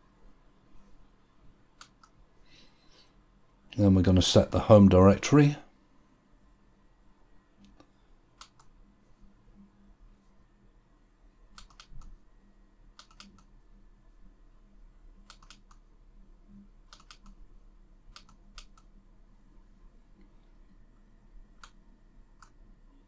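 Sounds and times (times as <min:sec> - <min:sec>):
computer mouse double-clicks: 0:08.4 - 0:08.8, 0:11.5 - 0:12.2, 0:13.0 - 0:13.5, 0:15.2 - 0:15.8, 0:16.9 - 0:17.4, 0:18.1 - 0:18.9.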